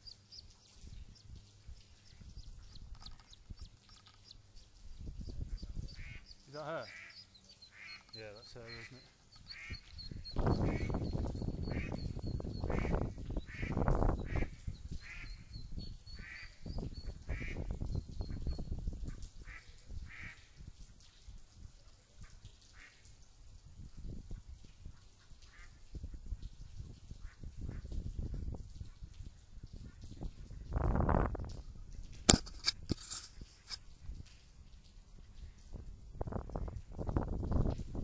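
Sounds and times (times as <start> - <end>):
ducklings peeping: 5.2 - 17.6
duck quacking: 6.0 - 8.1, 8.7 - 9.9.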